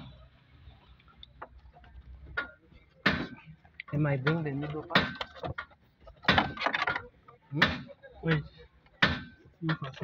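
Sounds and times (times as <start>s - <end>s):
parts clicking and rattling: 1.0s - 10.0s.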